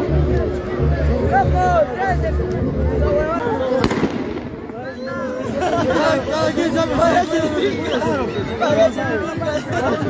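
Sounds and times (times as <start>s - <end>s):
people's voices: 0.0s - 10.0s
sharp bang: 3.8s - 4.9s.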